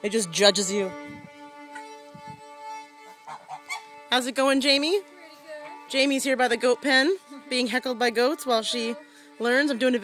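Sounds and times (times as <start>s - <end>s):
fiddle drone: 0.0s - 10.0s
fowl calls: 3.0s - 4.0s.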